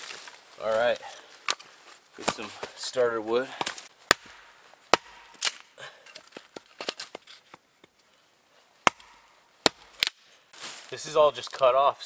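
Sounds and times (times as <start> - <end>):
axe splitting wood: 1.4 - 2.8, 3.5 - 8.0, 8.8 - 10.3.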